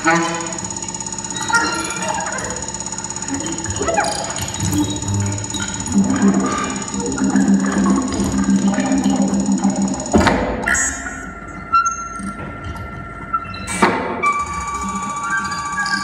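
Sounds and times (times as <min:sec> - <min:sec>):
buzzing texture of rapid pulses: 0:00.0 - 0:12.8
thin steady high tone: 0:00.6 - 0:10.2
sustained low tone: 0:04.8 - 0:11.6.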